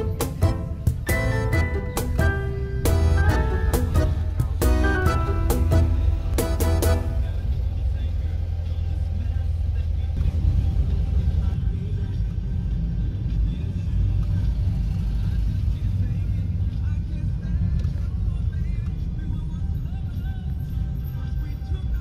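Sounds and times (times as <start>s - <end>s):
car road and engine rumble: 0.0s - 22.0s.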